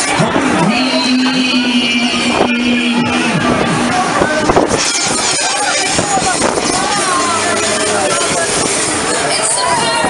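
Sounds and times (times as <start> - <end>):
rushing noise of fairground ride: 0.0 - 10.0
steady low tone: 0.2 - 9.3.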